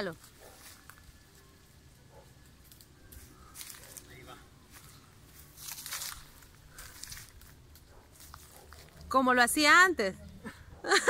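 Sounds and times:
dry leaves and twigs crackling: 0.0s - 10.4s.

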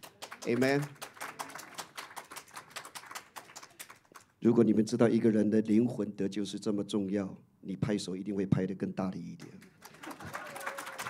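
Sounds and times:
congregation applauding lightly: 0.0s - 4.4s, 9.4s - 11.0s.

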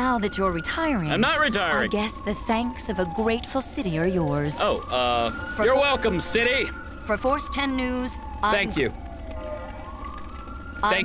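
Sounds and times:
siren wailing: 0.0s - 11.0s.

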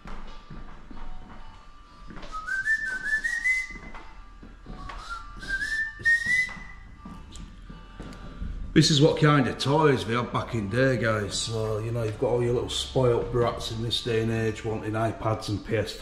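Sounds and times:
person whistling a tune: 2.2s - 4.1s, 4.7s - 7.0s.

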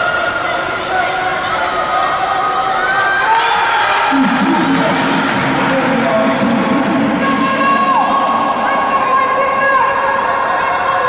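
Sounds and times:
music in sports hall: 0.0s - 11.0s
voices from stands: 0.0s - 11.0s.

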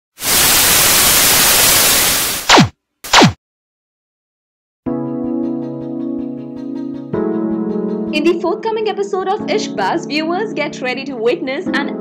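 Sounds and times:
tv static hiss: 0.1s - 3.2s.

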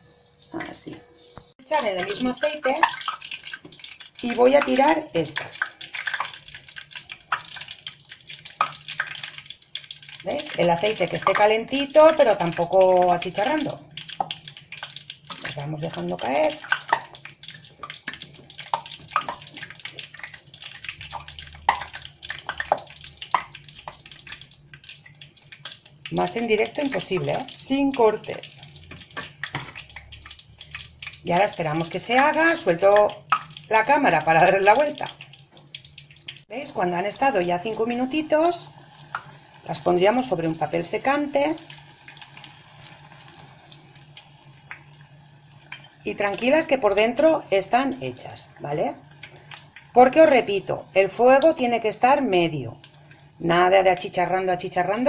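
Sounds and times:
batter frying in hot oil: 0.0s - 55.0s.

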